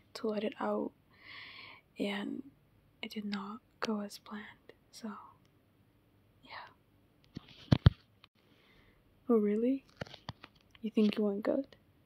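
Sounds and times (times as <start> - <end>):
woman whispering softly: 3.0 - 5.4, 6.4 - 6.8.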